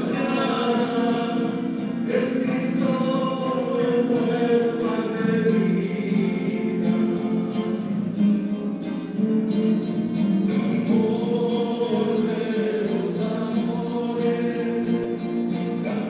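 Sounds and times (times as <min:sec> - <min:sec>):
choir singing a hymn: 0:00.0 - 0:07.8, 0:10.5 - 0:16.0.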